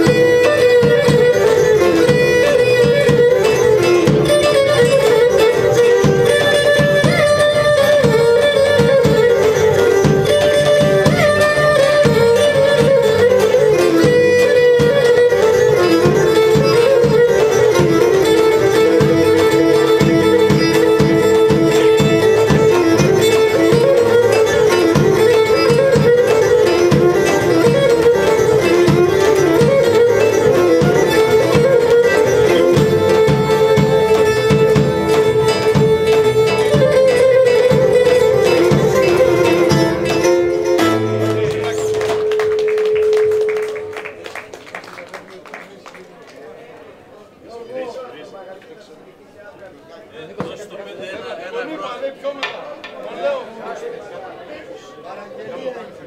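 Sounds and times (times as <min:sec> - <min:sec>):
guitar: 0:00.0 - 0:44.2
lyra playing quick melody: 0:00.0 - 0:44.3
drum beats: 0:00.0 - 0:44.6.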